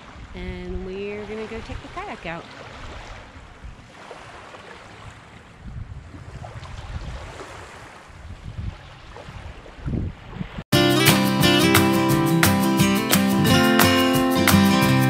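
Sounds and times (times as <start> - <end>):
wind on microphone: 0.0 - 4.0, 5.0 - 10.7
small waves lapping on sand: 0.0 - 10.6
music: 10.7 - 15.0.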